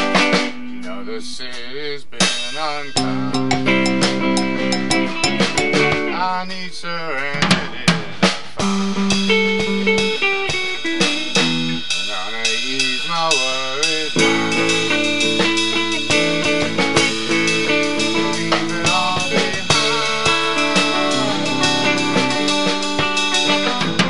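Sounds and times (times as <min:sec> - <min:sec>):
electric guitars: 0:00.0 - 0:01.2, 0:02.2 - 0:06.4, 0:07.2 - 0:24.0
drum kit: 0:00.0 - 0:24.0.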